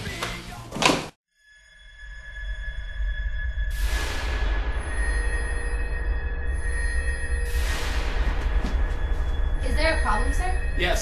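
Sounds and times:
high ringing tone: 1.3 - 4.0, 4.6 - 11.0
low dark drone: 2.1 - 11.0.

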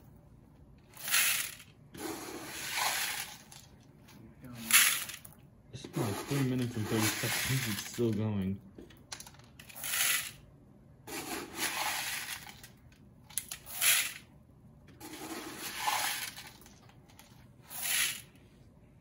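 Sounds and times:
cup scooping plastic pieces: 1.0 - 3.7, 6.0 - 8.1, 11.1 - 12.7, 15.0 - 18.2
plastic pieces rattling into bucket: 2.5 - 3.7, 4.6 - 5.3, 6.0 - 8.2, 11.1 - 14.2, 15.0 - 18.2.

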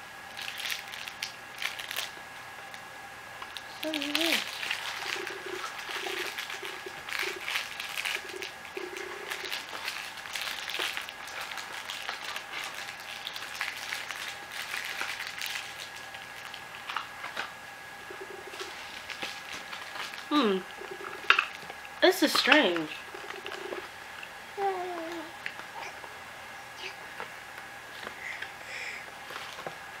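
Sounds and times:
packaging rustling and crinkling: 0.4 - 2.2, 3.4 - 17.5, 18.5 - 20.3, 29.2 - 29.8.

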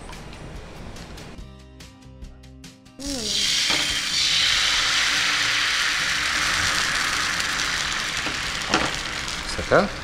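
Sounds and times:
batter sizzling on hot pan: 3.0 - 10.0.

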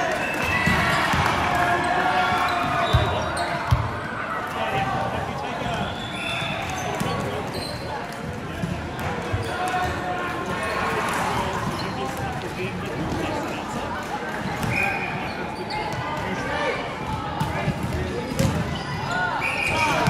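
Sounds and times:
echoing chatter: 0.0 - 20.0.

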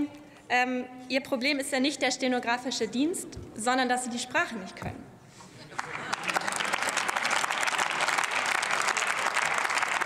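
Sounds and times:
applause in a large chamber: 5.7 - 10.0.

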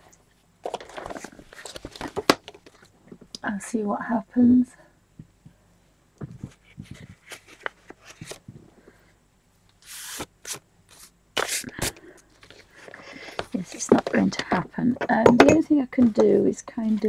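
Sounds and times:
paper rustling: 0.6 - 2.9, 6.3 - 8.6.

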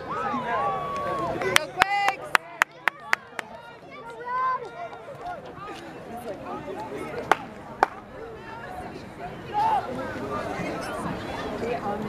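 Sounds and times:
people shouting and calling: 0.0 - 11.6.

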